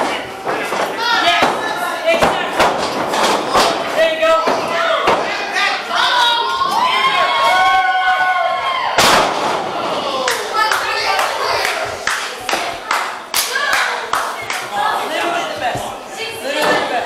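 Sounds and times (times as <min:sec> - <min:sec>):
crowd noise: 0:00.0 - 0:17.0
spectators shouting: 0:04.0 - 0:12.5.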